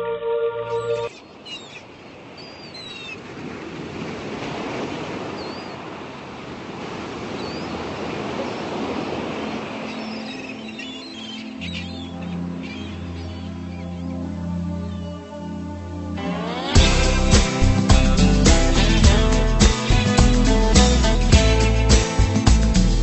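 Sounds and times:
low sustained music notes: 0.0 - 1.1, 9.5 - 23.0
bird chirps: 0.6 - 1.8, 9.9 - 14.1
ocean surf: 0.7 - 23.0.

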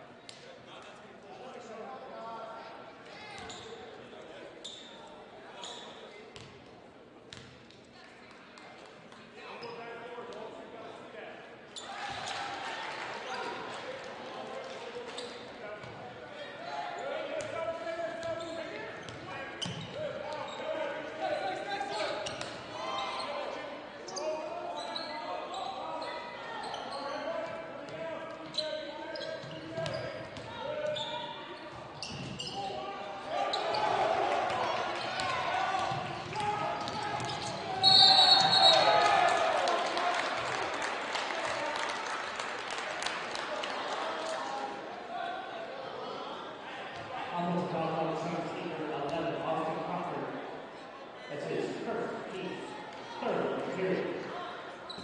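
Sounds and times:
crowd chatter and shouting: 0.0 - 55.0
referee's whistle: 37.3 - 39.1.

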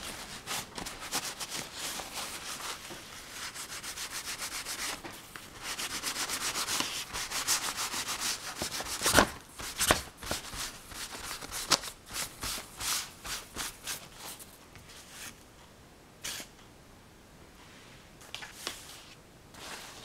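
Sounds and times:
tissue rubbing pastel on paper: 0.0 - 5.0, 5.6 - 14.4.

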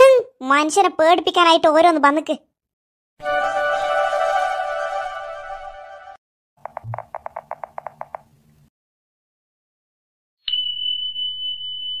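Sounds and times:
high-pitched ringing tone: 10.5 - 12.0.

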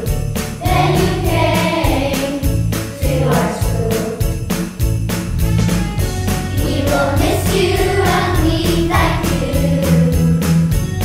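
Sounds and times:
sleigh rattle shaking: 0.0 - 10.9
backing track with steady beat: 0.0 - 11.0
group of voices singing: 0.6 - 4.3, 6.6 - 10.5.

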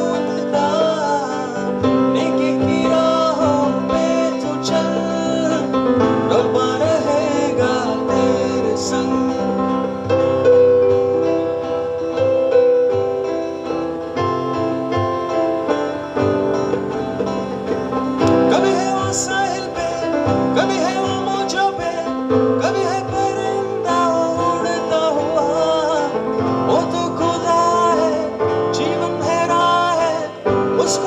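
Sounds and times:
acoustic guitar: 0.0 - 31.0
keyboard: 0.0 - 31.0.

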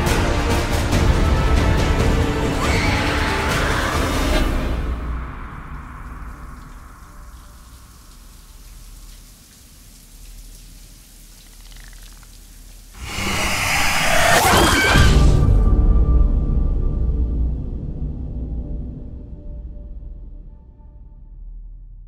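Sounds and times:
shower water spraying: 5.8 - 15.0
loud shrill wavering sound: 13.0 - 15.4.

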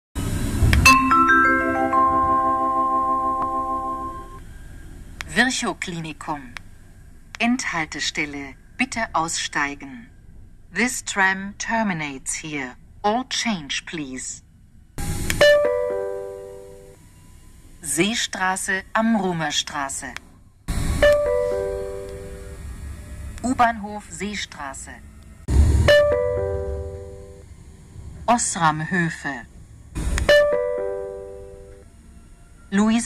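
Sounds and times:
electronic bell-like chime: 0.8 - 4.8, 21.0 - 22.6, 25.9 - 27.4
recorded announcement voice: 5.2 - 6.6, 7.3 - 10.1, 10.7 - 14.5, 17.8 - 20.3, 23.4 - 25.1, 28.2 - 29.6, 32.7 - 33.0.

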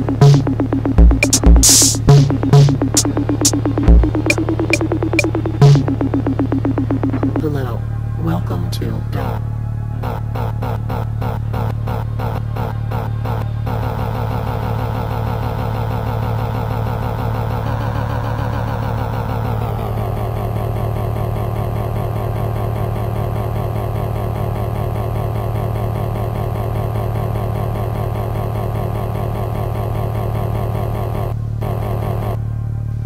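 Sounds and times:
buzzing synthesizer drone: 0.0 - 8.2
deep low hum: 0.0 - 8.2.

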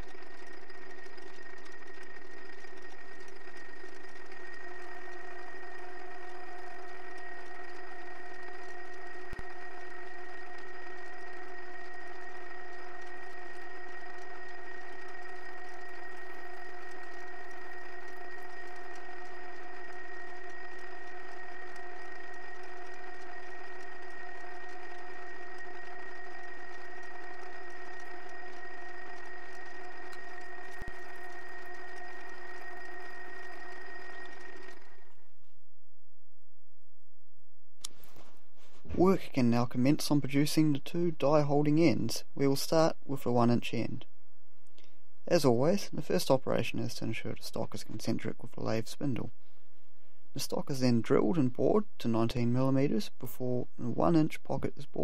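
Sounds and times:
metal lathe whining: 0.0 - 35.2.

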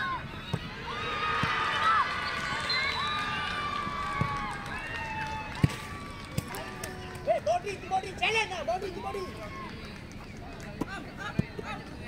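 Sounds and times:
football being kicked: 0.4 - 0.8.

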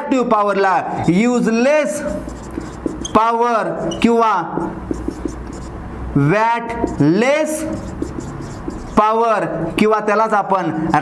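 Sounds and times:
marker scratching on whiteboard: 1.0 - 5.9, 6.6 - 10.0, 10.7 - 11.0.

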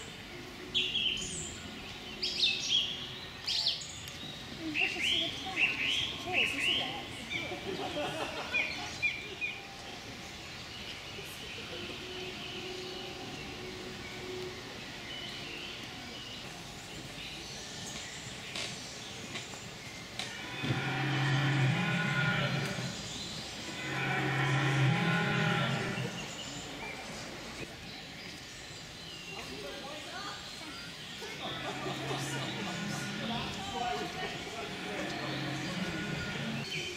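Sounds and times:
recorded low bellowing call: 20.2 - 27.6, 31.2 - 36.9.

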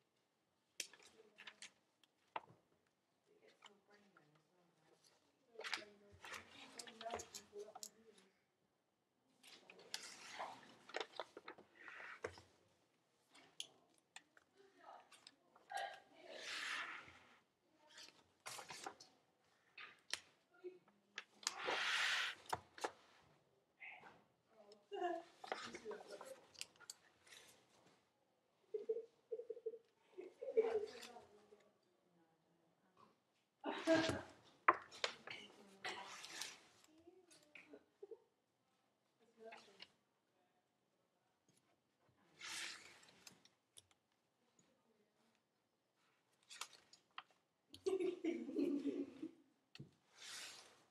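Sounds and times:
rustling paper pages turning: 9.4 - 12.5, 18.0 - 19.1, 42.4 - 43.5, 50.1 - 50.9.

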